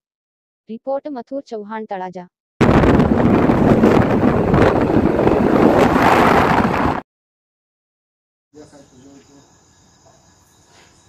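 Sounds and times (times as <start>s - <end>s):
crickets chirping: 8.6s - 11.0s.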